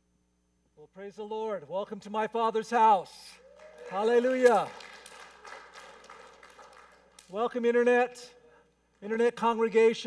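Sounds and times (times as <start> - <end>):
faint scattered clapping: 3.4 - 7.6.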